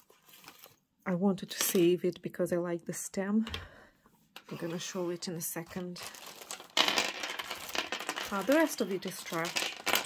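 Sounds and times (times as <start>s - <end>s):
jewellery and beads clinking: 5.7s - 10.0s
bag crinkling: 5.9s - 10.0s.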